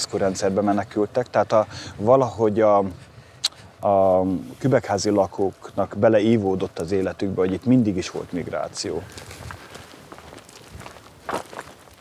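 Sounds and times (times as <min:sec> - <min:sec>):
faint background hiss: 0:00.0 - 0:12.0
footsteps on dry grass and dirt: 0:04.0 - 0:12.0.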